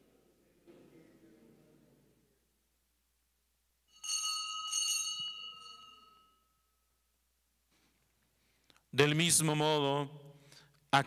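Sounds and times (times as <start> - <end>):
small altar bell ringing: 3.9 - 7.2.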